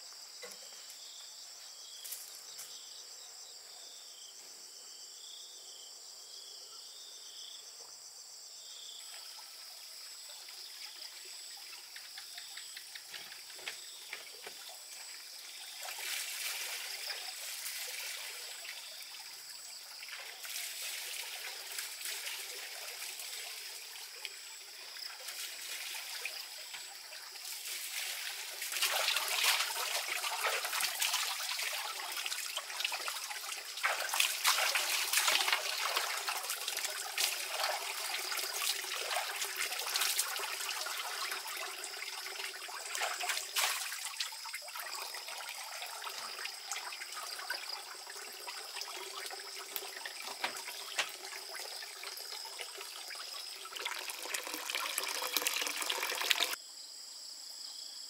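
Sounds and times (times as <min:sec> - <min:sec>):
water trickling and splashing: 0:08.8 - 0:56.6.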